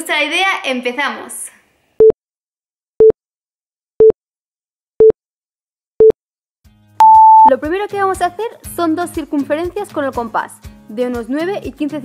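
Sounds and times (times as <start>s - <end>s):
countdown timer beeps: 7.0s - 7.5s.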